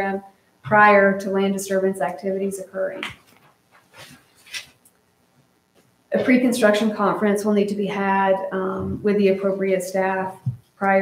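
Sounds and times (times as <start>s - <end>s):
paper pages rustling: 3.1s - 5.0s.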